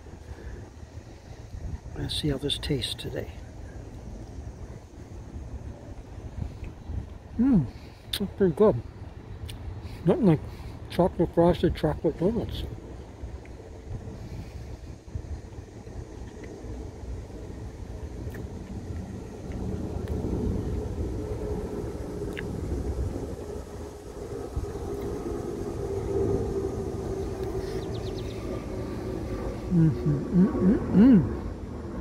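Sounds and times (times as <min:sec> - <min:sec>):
road traffic engine hum: 0:00.0 - 0:32.0.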